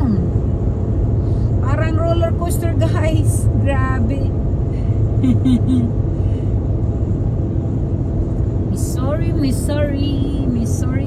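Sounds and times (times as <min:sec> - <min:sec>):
voices talking in car: 0:00.0 - 0:00.6, 0:01.2 - 0:07.5, 0:08.3 - 0:11.0
car road and engine rumble: 0:00.0 - 0:11.0.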